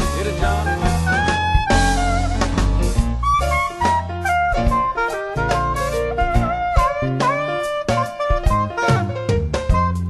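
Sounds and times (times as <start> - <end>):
blues band instrumental: 0.0 - 10.0
lead melody with sliding notes: 0.0 - 10.0.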